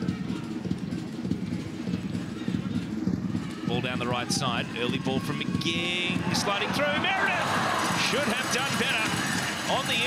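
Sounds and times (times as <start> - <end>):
stadium crowd rumble: 0.0 - 10.0.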